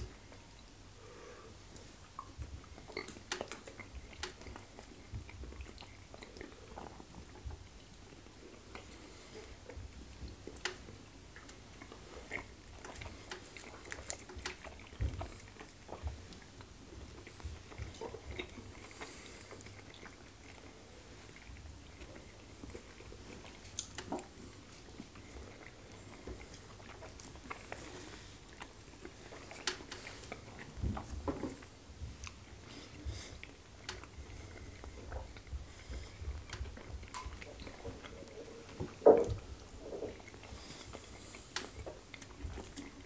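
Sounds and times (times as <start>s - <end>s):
chewing with wet smacks: 1.6s - 43.0s.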